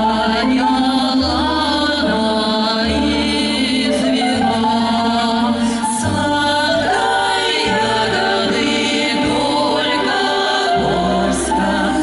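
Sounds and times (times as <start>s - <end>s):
women singing in harmony: 0.0s - 12.0s.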